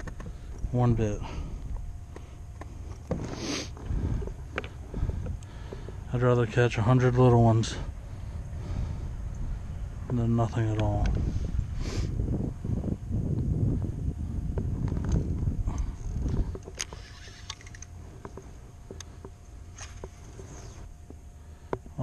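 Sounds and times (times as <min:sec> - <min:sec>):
fishing reel clicks: 0:15.8 - 0:17.9.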